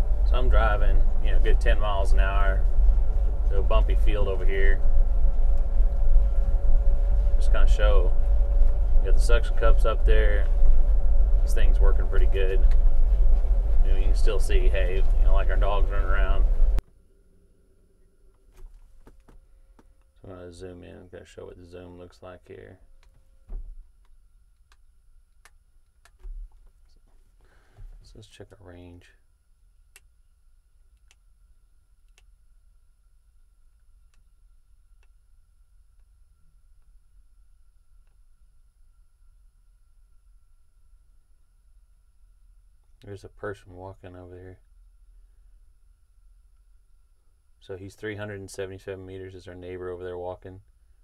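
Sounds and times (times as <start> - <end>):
faint high whine: 0.0 - 51.0
quiet low hum: 0.0 - 51.0.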